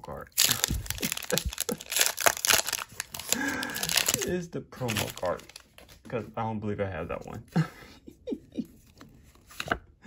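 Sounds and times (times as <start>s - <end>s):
foil wrapper tearing and crinkling: 0.2s - 5.7s.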